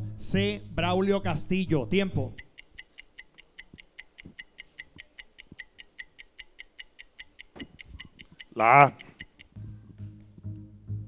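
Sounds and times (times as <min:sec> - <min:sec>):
fast clock-like ticking: 0:01.4 - 0:09.5.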